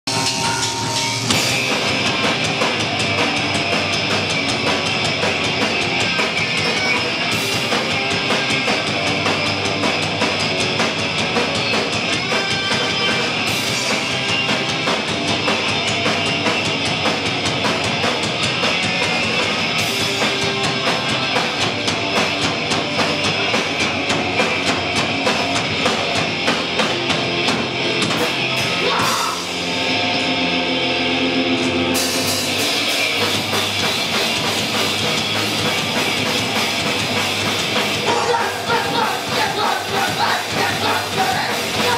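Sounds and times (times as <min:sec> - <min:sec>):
live rock band playing: 0:00.0 - 0:41.9.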